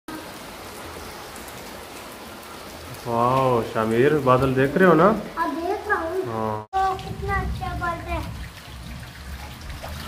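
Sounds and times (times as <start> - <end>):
rain falling: 0.1 - 10.0.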